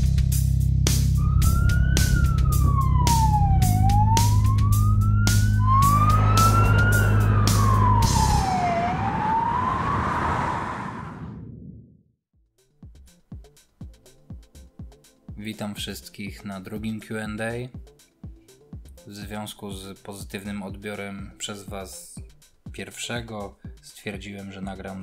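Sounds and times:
music with steady drum beat: 0.0 - 8.2, 12.4 - 25.0
siren wailing: 1.2 - 11.5.

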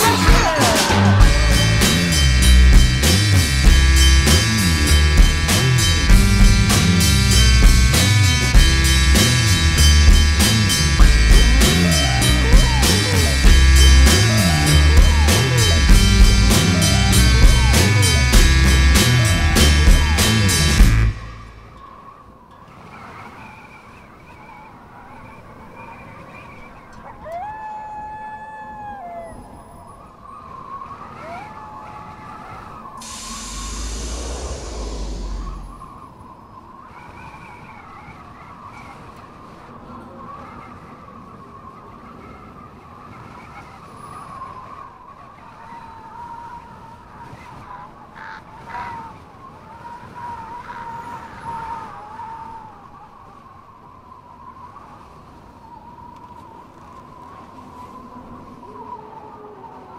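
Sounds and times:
loud rushing rumble: 0.0 - 21.7, 33.0 - 36.0
short rising whines: 0.0 - 21.8, 33.0 - 36.2
car whirring hum: 33.0 - 35.9.

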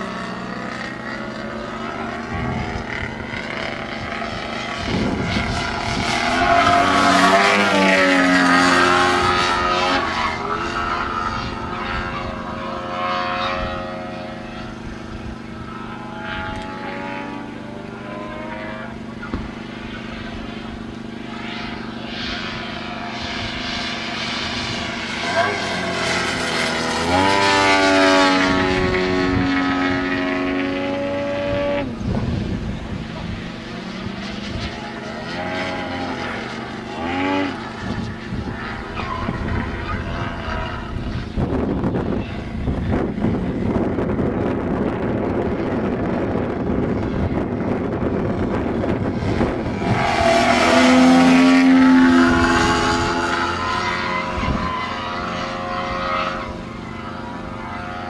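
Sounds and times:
model plane engine and propeller: 0.0 - 58.0.

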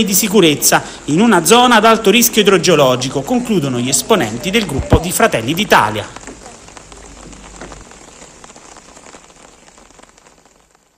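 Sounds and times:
rain falling on water: 0.0 - 10.9.

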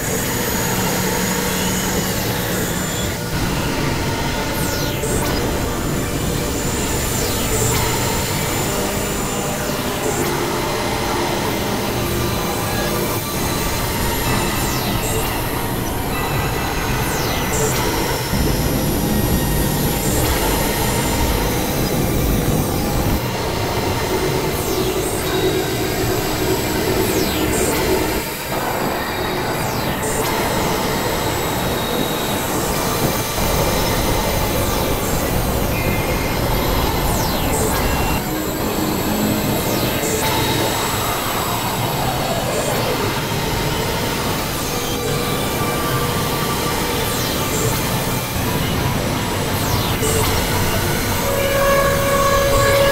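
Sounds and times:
drone tones: 0.0 - 52.9.

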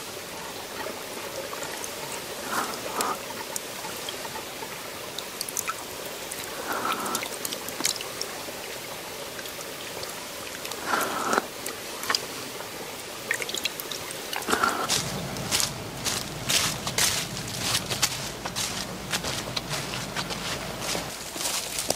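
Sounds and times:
stream trickling: 0.0 - 21.9
water drips: 0.0 - 21.9.

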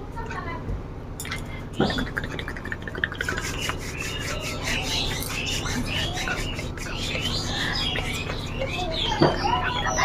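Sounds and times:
hands rubbing together: 2.0 - 8.6.

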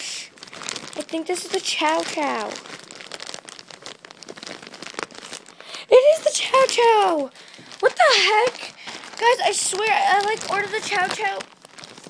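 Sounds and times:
packaging crinkling: 0.2 - 12.0
person speaking: 1.0 - 2.6, 5.8 - 11.4.

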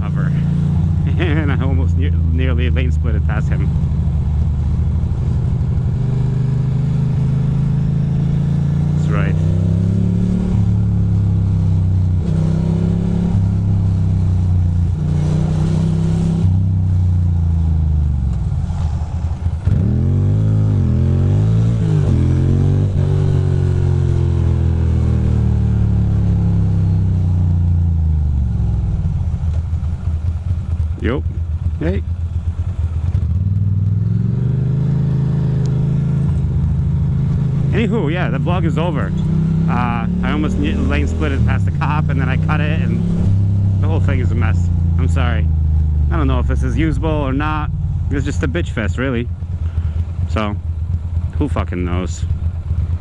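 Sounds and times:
motorcycle engine accelerating: 0.0 - 53.0.

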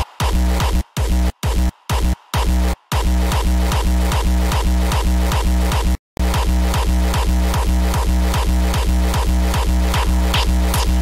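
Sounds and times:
fast kick drums: 0.0 - 11.0.

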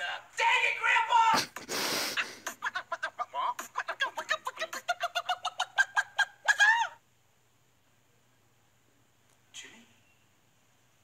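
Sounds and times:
man beatboxing mouth pops: 3.6 - 3.8.

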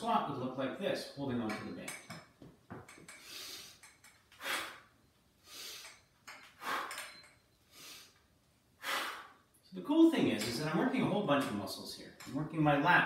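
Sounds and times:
man breathing through mouth: 3.1 - 8.2, 8.8 - 9.4.

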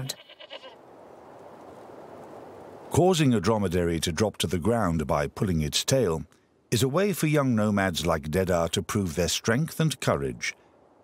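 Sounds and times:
goat bleating: 0.0 - 0.8
low background hiss: 0.0 - 11.0.

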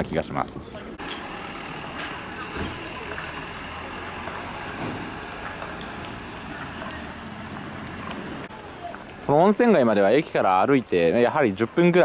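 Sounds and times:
street noise: 0.0 - 12.0
bus engine running: 1.0 - 8.5.

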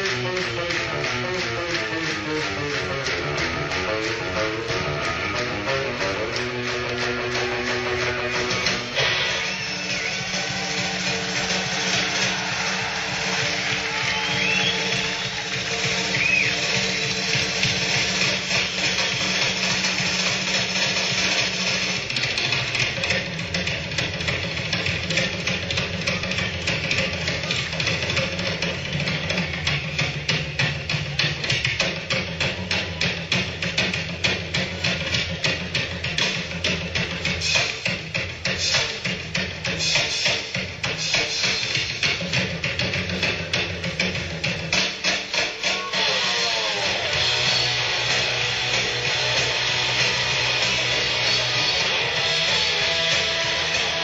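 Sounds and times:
steady beat of sharp taps: 0.0 - 9.0
rock band held low chord: 46.8 - 54.0.

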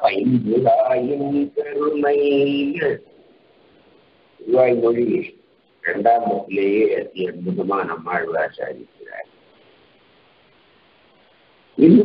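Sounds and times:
man speaking: 0.0 - 3.1, 4.4 - 9.3, 11.8 - 12.0
recording hiss: 0.0 - 12.0.

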